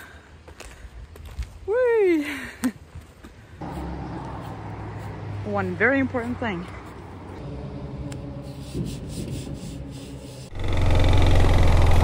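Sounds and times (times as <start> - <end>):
wind noise: 8.3 - 10.1
motorcycle engine running: 10.5 - 12.0.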